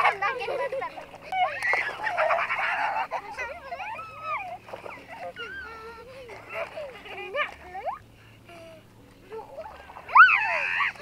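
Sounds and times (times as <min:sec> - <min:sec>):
children calling and squealing: 0:00.0 - 0:11.0.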